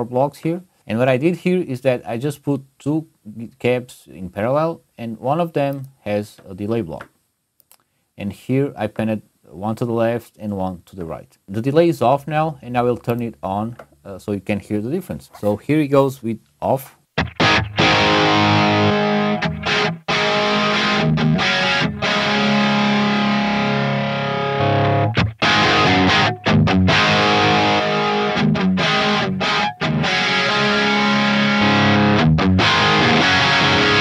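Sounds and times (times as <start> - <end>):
distorted electric guitar riff: 17.2 - 34.0.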